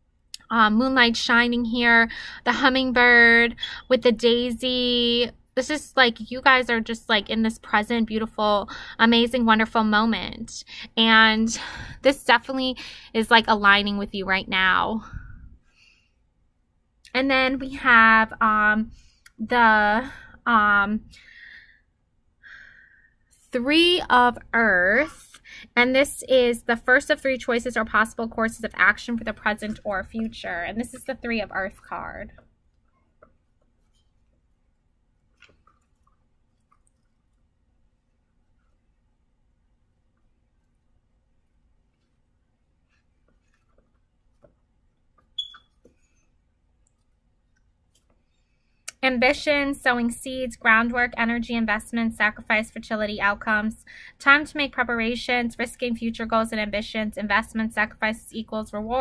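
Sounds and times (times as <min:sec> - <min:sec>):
woman speaking: 0:00.4 - 0:15.1, 0:17.1 - 0:21.1, 0:23.3 - 0:32.4, 0:48.9 - 0:59.0
woman breathing: 0:02.1 - 0:02.5, 0:03.6 - 0:03.9, 0:08.7 - 0:09.0, 0:10.6 - 0:12.1, 0:12.8 - 0:13.2, 0:15.0 - 0:16.3, 0:21.1 - 0:23.3, 0:25.4 - 0:25.8, 0:53.8 - 0:54.2
faint sharp clicks and taps: 0:42.9 - 0:46.1.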